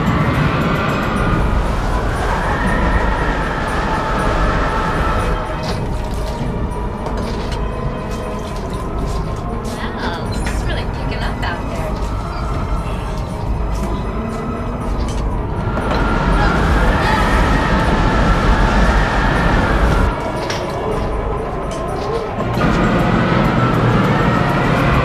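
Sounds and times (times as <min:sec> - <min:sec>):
tornado wind howling: 0:00.0 - 0:25.0.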